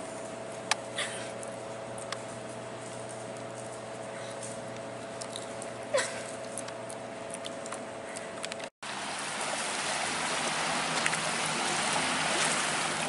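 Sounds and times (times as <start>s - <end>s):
steady hum: 0.0s - 13.0s
ocean surf: 8.9s - 13.0s.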